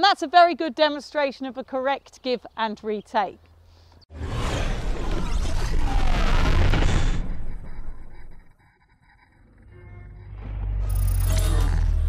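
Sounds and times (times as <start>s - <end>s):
loud whoosh: 4.1s - 7.6s.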